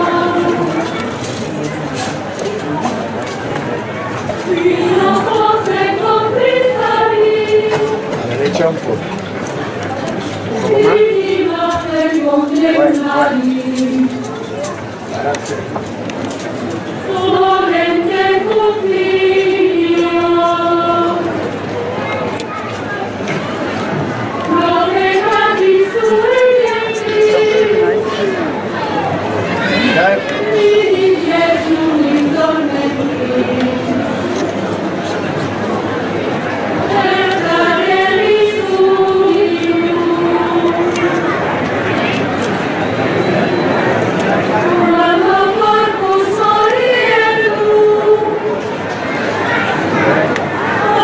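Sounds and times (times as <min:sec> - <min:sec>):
religious singing: 0:00.0 - 0:02.9, 0:03.5 - 0:09.0, 0:10.2 - 0:22.0, 0:23.8 - 0:51.0.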